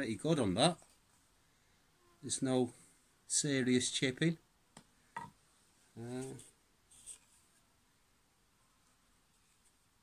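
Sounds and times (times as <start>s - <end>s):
person saying uh: 6.0s - 6.5s.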